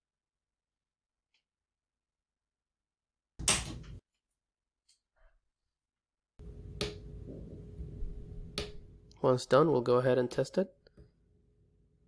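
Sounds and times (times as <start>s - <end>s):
faint room hum: 6.4s - 12.0s.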